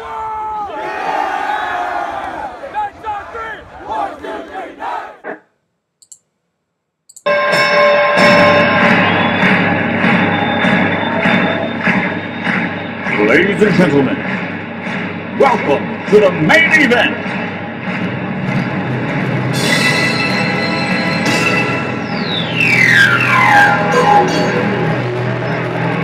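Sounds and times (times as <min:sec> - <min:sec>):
boys shouting a cheer: 0:00.0 - 0:05.2
loud music: 0:07.3 - 0:26.0.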